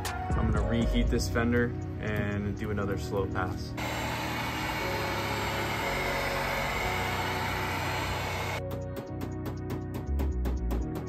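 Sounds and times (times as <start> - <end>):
heat gun blowing: 3.8 - 8.6.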